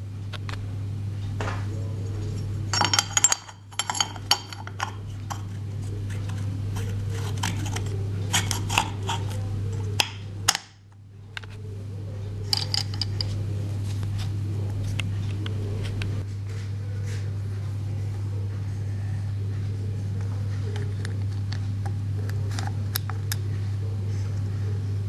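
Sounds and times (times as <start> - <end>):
steady low hum: 0.0 - 25.0
small metal parts clinking: 2.8 - 5.4, 12.5 - 13.3.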